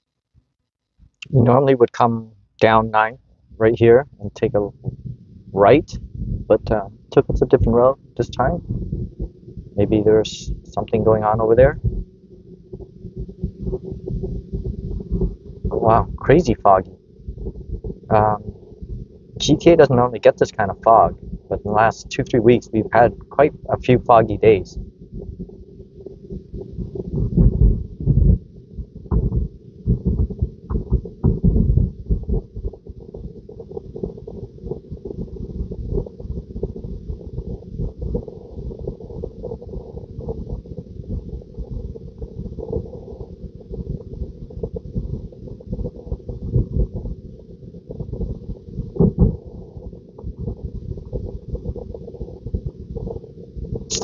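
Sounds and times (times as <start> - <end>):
steady hum: 1.1 - 47.1, 48.1 - 54.0
low thumps: 2.7 - 12.1, 24.1 - 38.3, 47.9 - 54.0.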